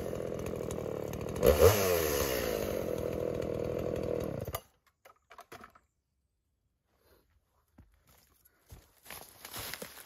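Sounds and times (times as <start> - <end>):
chainsaw idling: 0.0 - 4.6.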